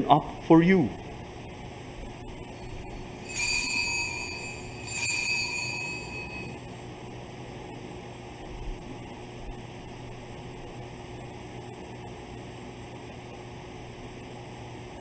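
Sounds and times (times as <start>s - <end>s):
altar bell ringing: 2.6s - 6.6s.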